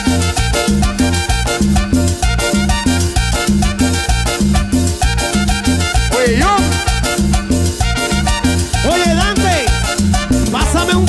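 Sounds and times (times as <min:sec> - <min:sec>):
instrumental cumbia band: 0:00.0 - 0:11.0.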